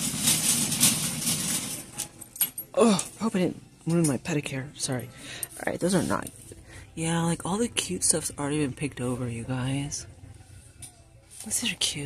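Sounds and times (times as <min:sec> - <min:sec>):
shopping cart rolling on hard floor: 0:00.0 - 0:02.2.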